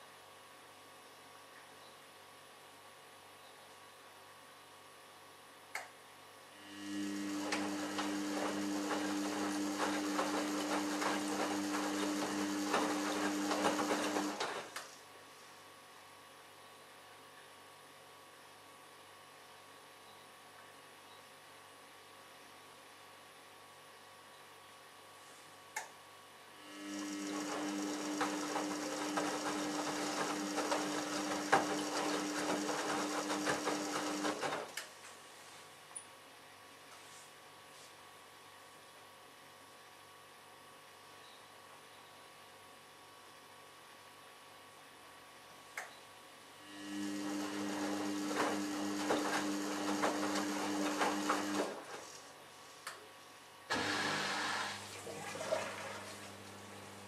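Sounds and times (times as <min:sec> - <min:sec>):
washing machine drum motor hum: 0:07.2 - 0:14.8, 0:27.0 - 0:34.8, 0:46.9 - 0:52.1, 0:53.7 - 0:57.0
laundry and water sloshing: 0:54.7 - 0:56.7.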